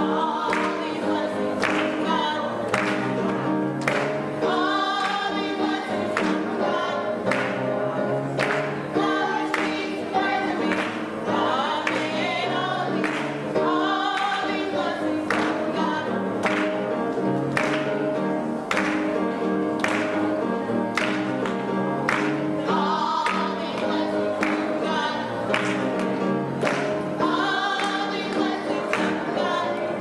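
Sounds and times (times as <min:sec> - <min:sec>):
gospel choir singing: 0:00.0 - 0:30.0
piano accompaniment: 0:00.0 - 0:30.0
hand claps on the beat: 0:00.4 - 0:07.7, 0:08.3 - 0:29.6.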